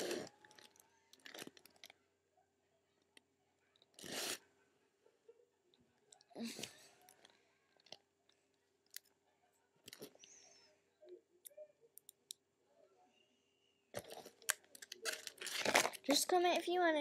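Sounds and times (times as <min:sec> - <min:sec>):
plastic sleeve pages rustling: 0:14.8 - 0:16.2.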